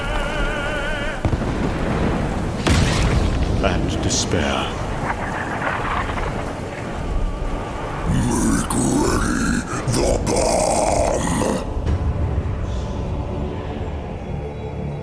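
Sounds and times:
drawn-out creature vocal: 8.0s - 11.7s.

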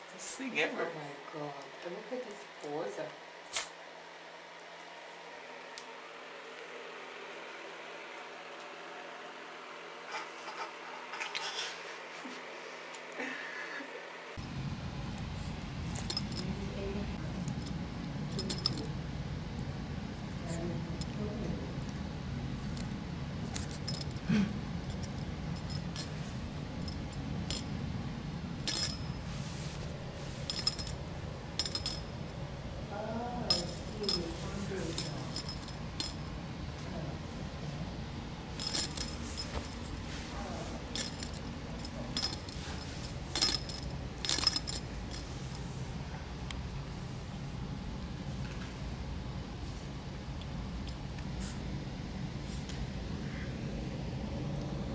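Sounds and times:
low hum: 14.4s - 54.9s
metal collar tag jingling: 15.9s - 16.6s, 17.4s - 18.9s, 22.6s - 27.8s, 28.6s - 29.4s, 30.4s - 31.0s, 31.6s - 32.4s, 33.5s - 36.4s, 38.6s - 40.2s, 40.9s - 45.4s.

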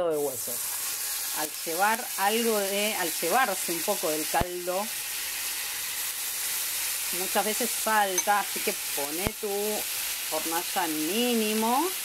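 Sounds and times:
fat sizzling and spitting in a skillet: 0.0s - 12.0s.

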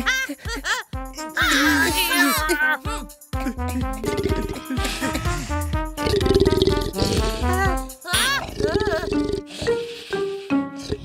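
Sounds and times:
cartoon background music: 0.0s - 11.0s
buzzy rattling snore: 6.0s - 7.6s.

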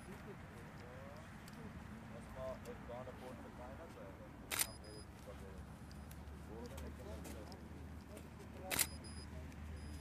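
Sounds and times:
faint voices murmuring: 0.0s - 10.0s
camera shutter click: 4.5s - 4.8s, 8.7s - 9.2s.

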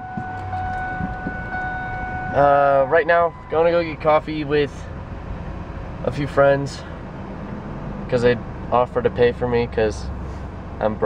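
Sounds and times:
car warning buzzer tone: 0.0s - 4.8s.

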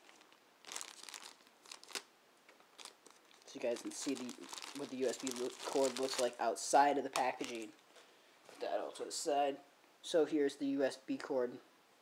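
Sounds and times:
plastic bag crinkling: 0.0s - 2.1s, 2.7s - 6.4s, 7.1s - 7.8s.

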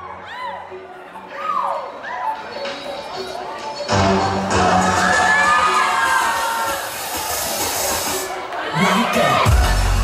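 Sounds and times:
pop dance music: 0.0s - 10.0s
audience cheering and whooping: 4.5s - 10.0s.

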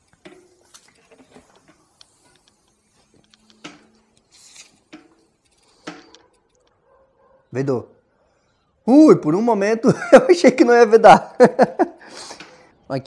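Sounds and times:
bike wheel clicks and rustles: 0.0s - 7.0s.

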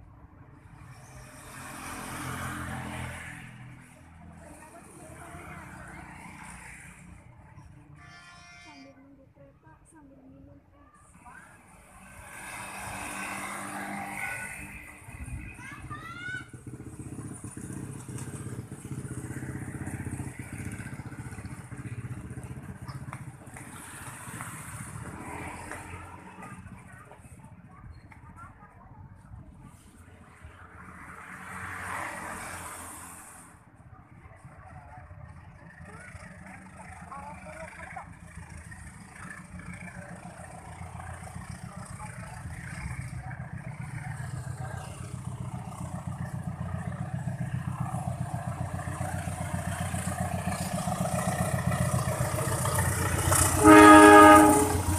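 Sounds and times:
motor vehicle passing: 0.0s - 8.0s, 9.2s - 54.9s.

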